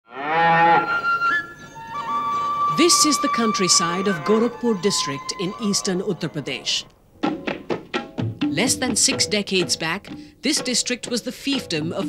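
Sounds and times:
cow mooing: 0.1 - 1.1, 3.6 - 6.9
background music high note: 0.7 - 7.7.

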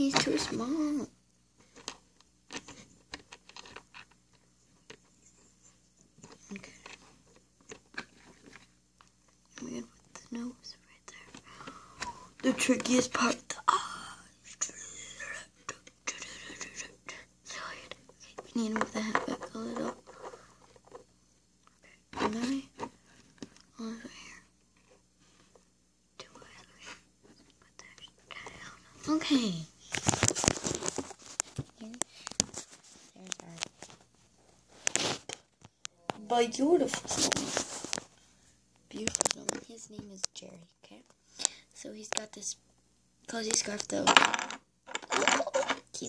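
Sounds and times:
child whispering: 6.3 - 7.0, 9.5 - 20.2, 21.8 - 22.8, 23.7 - 24.5, 26.2 - 29.7.

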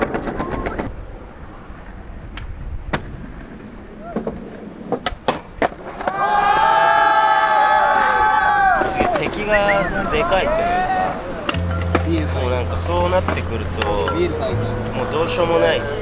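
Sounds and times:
skateboard clacking: 0.0 - 0.9, 2.3 - 6.4, 8.8 - 15.0
skateboard wheels rolling on concrete: 0.0 - 16.0
group shouting and cheering: 6.0 - 11.8.

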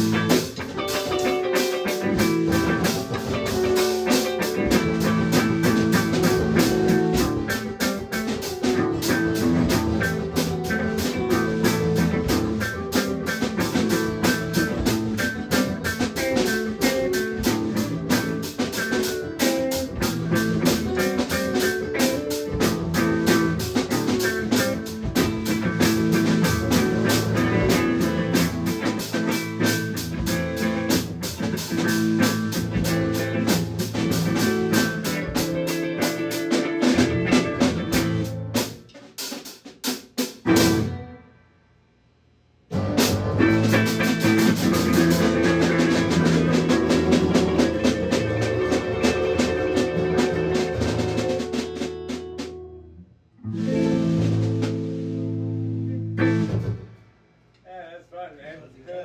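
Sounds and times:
guitars: 0.0 - 39.4, 40.2 - 41.3, 42.7 - 57.0
drum kit beat: 0.0 - 41.1, 42.7 - 52.7, 53.4 - 59.0.

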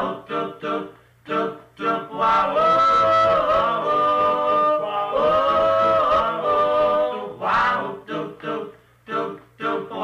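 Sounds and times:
male vocal group singing a cappella: 0.0 - 10.0.

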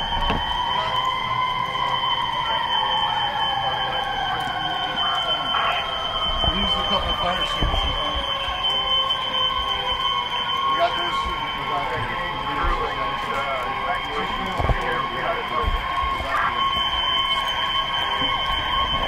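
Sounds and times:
fire alarm steady high tone: 0.0 - 19.0
siren wail: 0.0 - 19.0.

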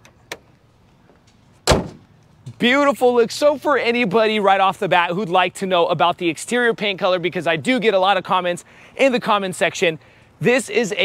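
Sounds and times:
car hood slammed shut: 1.6 - 2.0.

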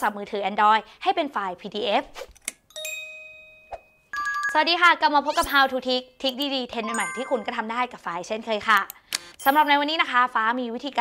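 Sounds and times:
bell-like chime: 2.7 - 4.7, 6.9 - 7.8.

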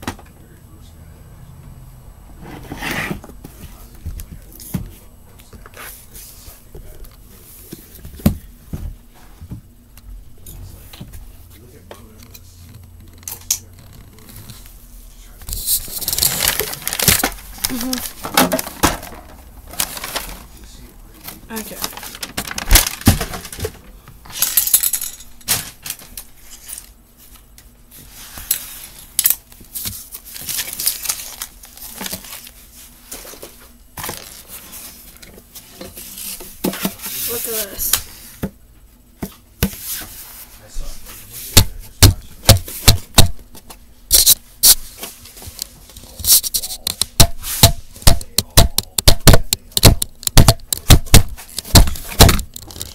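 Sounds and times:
rustling and crinkling: 10.6 - 24.8, 25.4 - 41.6.

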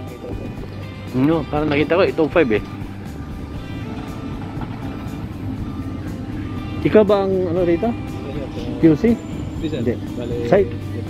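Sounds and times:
background music: 0.0 - 11.0
construction machinery humming: 0.0 - 11.0.

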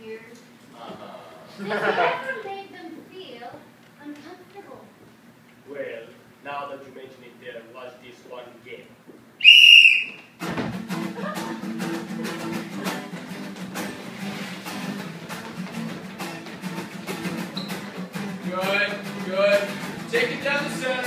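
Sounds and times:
sports whistle warbling: 9.4 - 10.3
acoustic guitar strumming: 9.7 - 21.0
quick footfalls and knocks: 10.1 - 10.9, 14.5 - 16.6.

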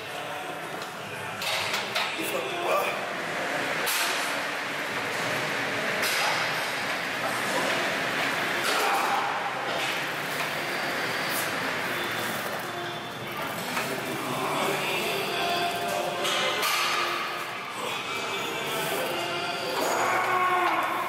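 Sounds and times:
indistinct voices echoing: 13.7 - 21.0.

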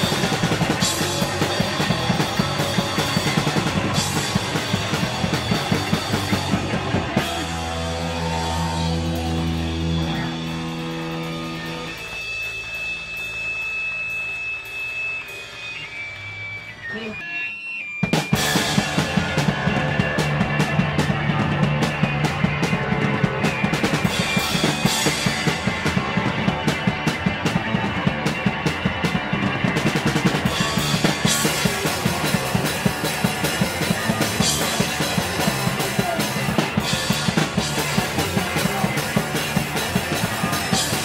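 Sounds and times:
drum kit fast rhythm: 0.0 - 16.2, 18.0 - 41.0
electric guitar feedback whine: 0.0 - 41.0.

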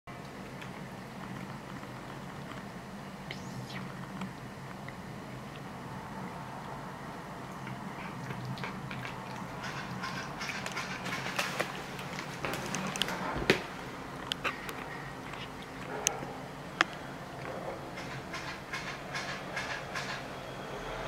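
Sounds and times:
steady low hum: 0.1 - 21.0
cat chewing food: 4.1 - 10.8.

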